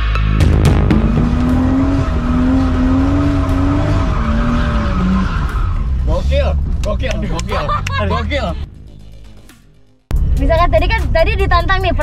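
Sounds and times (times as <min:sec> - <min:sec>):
car engine at high revs: 0:00.3 - 0:10.1.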